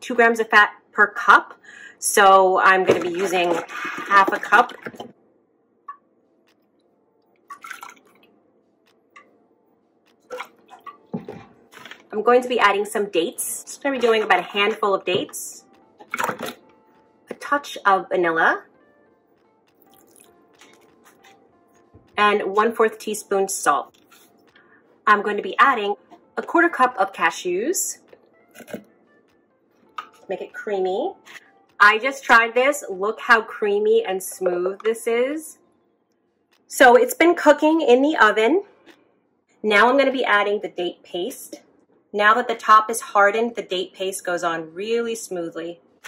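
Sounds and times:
liquid splashing into jar: 0:02.9 - 0:05.1, 0:07.4 - 0:08.3, 0:10.3 - 0:12.1, 0:16.0 - 0:16.7, 0:19.8 - 0:20.8.

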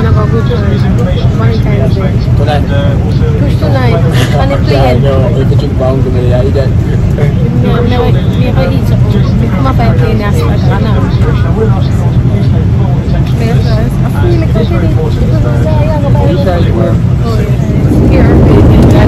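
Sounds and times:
airliner cabin drone: 0:00.0 - 0:19.0
people talking: 0:00.0 - 0:19.0.

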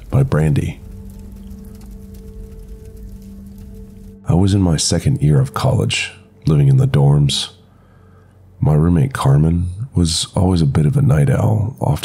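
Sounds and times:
droning background music: 0:00.0 - 0:12.0.

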